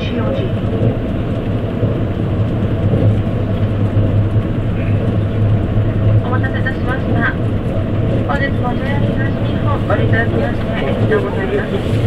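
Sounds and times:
low hum: 0:00.0 - 0:09.9
train wheels rumbling on rail: 0:00.0 - 0:12.0.

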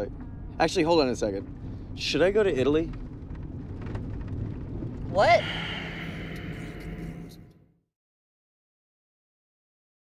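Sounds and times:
car interior rumble: 0:00.0 - 0:07.6.

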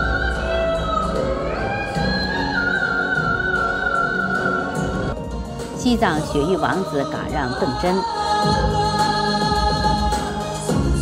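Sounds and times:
pop backing track: 0:00.0 - 0:11.0.

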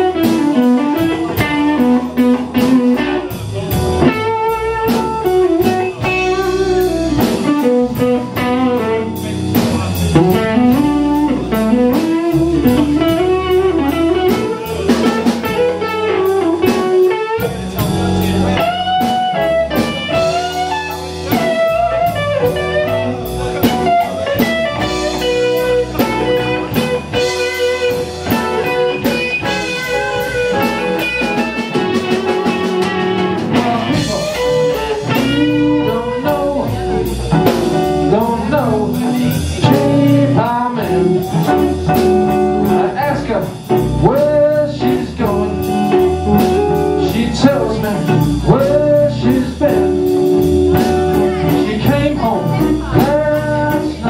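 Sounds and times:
bass guitar: 0:00.0 - 0:54.0
drums: 0:00.0 - 0:54.0
electric guitar lead: 0:00.0 - 0:54.0.

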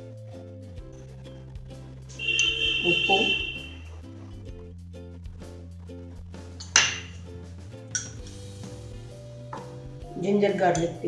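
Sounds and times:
background music: 0:00.0 - 0:11.0
metal spoon clinking kitchenware: 0:07.9 - 0:08.2.

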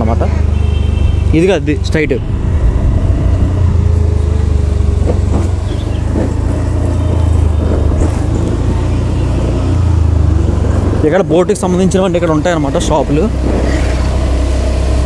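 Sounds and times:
motorbike running at low speed: 0:00.0 - 0:15.0
wind buffeting microphone: 0:02.0 - 0:11.4.

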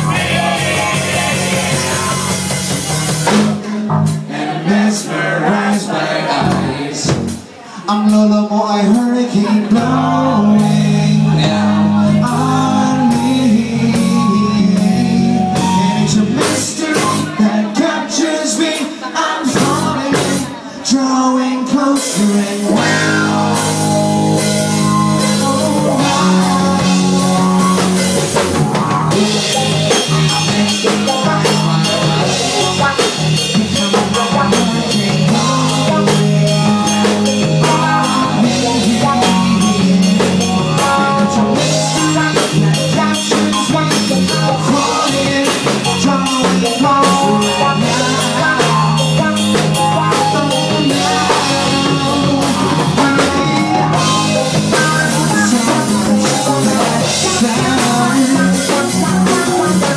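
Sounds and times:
male singer: 0:00.0 - 0:02.4, 0:03.6 - 0:59.9
rock band playing: 0:00.0 - 0:59.9.

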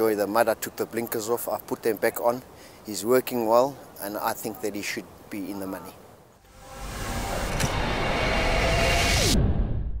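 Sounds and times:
low rumble: 0:06.4 - 0:10.0
falling tone: 0:06.5 - 0:10.0
rushing whoosh: 0:06.5 - 0:10.0.

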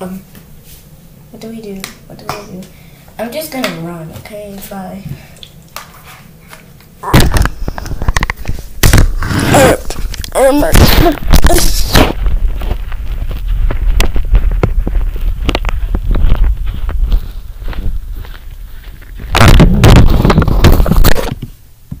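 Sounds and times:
microphone handling noise: 0:07.0 - 0:22.0.

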